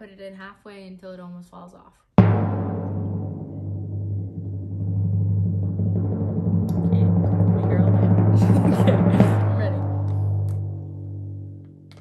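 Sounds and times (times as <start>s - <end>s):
timpani roll: 2.2s - 12.0s.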